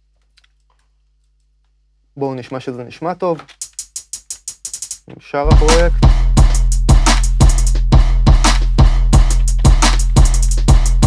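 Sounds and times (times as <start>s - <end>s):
trap drum beat: 3.4s - 11.0s.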